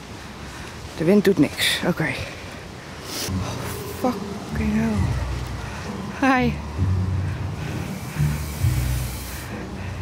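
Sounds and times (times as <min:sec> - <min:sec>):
low drone: 0:03.3 - 0:10.0
fog machine hissing: 0:07.7 - 0:09.6.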